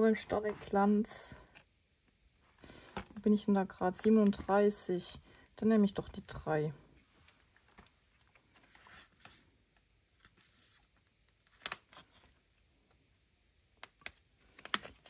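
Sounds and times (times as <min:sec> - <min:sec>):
planner pages rustling: 0:04.0 - 0:04.7, 0:07.0 - 0:12.4.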